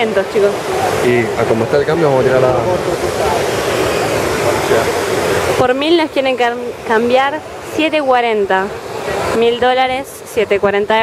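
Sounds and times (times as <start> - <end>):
fountain water rushing: 0.0 - 11.0
murmur of crowd: 0.0 - 11.0.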